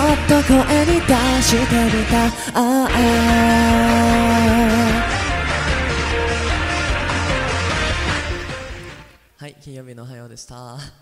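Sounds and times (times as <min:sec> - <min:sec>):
pop backing track: 0:00.0 - 0:09.2
person singing long note: 0:02.6 - 0:05.1.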